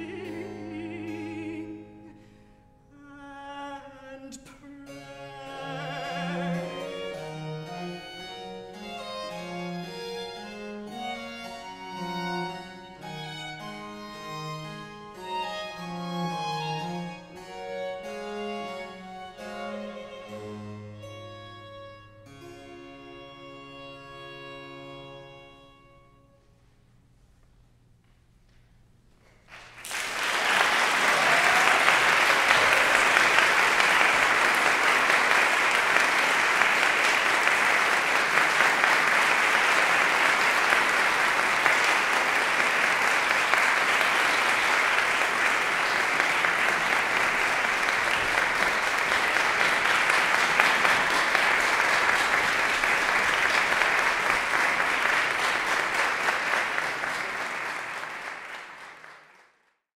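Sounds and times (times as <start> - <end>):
audience applauding: 29.2 - 59.8.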